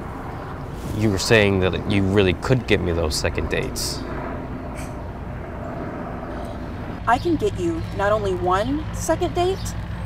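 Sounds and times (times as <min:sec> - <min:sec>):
distant engine rumble: 0:00.0 - 0:10.0.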